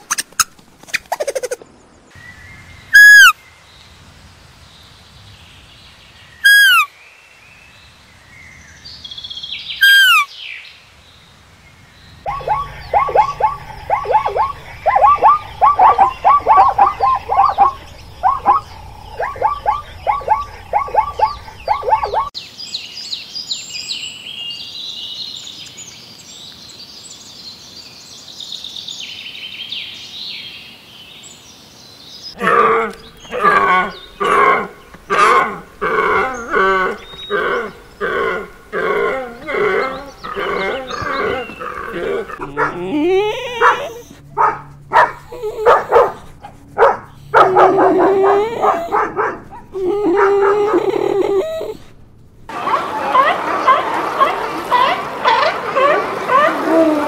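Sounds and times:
high twittering birdsong: 0.0s - 56.9s
repeated falling animal calls: 2.9s - 3.4s, 6.4s - 6.9s, 9.8s - 10.3s, 12.2s - 22.3s, 32.4s - 44.2s, 44.9s - 51.9s
low hum: 12.0s - 22.3s, 32.5s - 52.6s
pulsed grunting calls: 12.3s - 22.3s, 32.4s - 57.0s.

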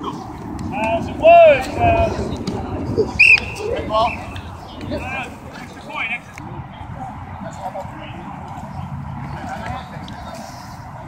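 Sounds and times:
steady low rumble: 0.0s - 11.0s
distant players shouting: 3.1s - 5.4s.

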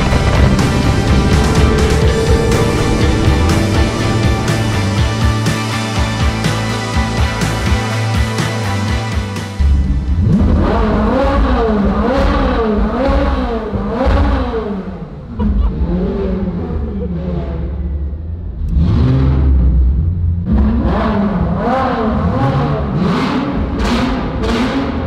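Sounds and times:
car engine revving: 0.0s - 8.2s, 9.6s - 25.0s.

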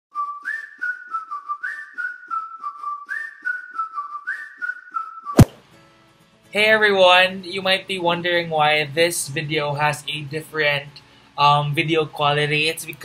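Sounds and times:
whistled tune: 0.1s - 5.5s
loud hit: 5.4s - 5.6s.

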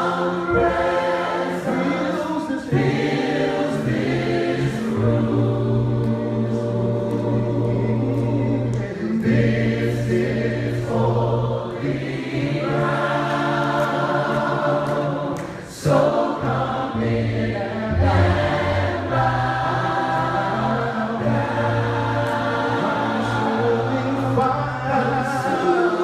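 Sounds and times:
choir singing slow chords: 0.0s - 26.0s.

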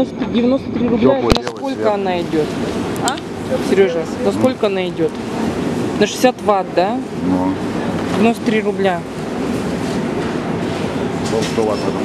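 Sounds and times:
store background noise: 0.0s - 12.0s.

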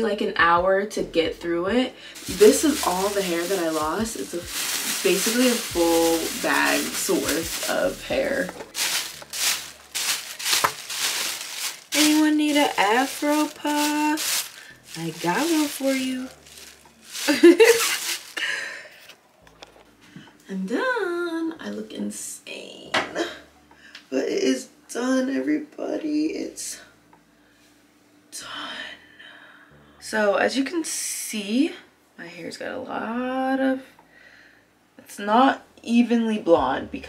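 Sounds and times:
plastic bag crinkling: 2.2s - 19.1s.

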